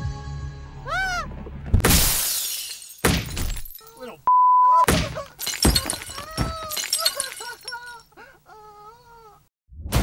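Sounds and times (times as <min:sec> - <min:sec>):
censor beep: 0:04.3 - 0:04.8.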